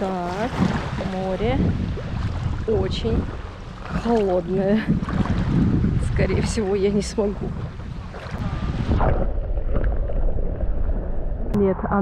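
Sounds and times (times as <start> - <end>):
underwater rumble and slosh: 0.0 - 12.0
microphone splashing into water: 0.3 - 11.6.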